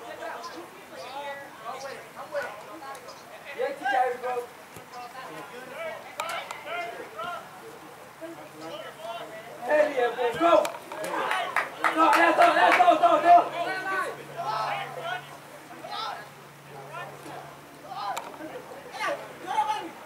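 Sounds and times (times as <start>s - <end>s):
people shouting and chattering: 0.0s - 20.0s.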